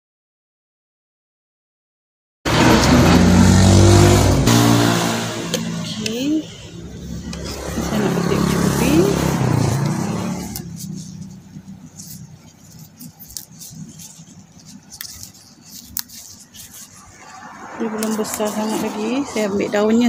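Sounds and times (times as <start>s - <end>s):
motor vehicle engine running: 2.5s - 20.0s.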